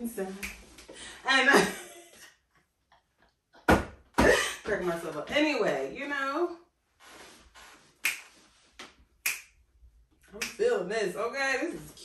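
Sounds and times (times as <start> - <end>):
fingers snapping: 8.0 - 8.4, 9.2 - 9.5.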